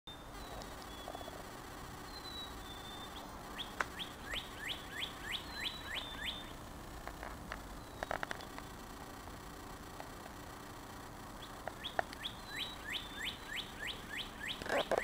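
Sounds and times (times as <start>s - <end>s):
bird whistling song: 0.1s - 1.4s, 2.0s - 6.6s, 7.8s - 8.2s, 11.4s - 15.0s.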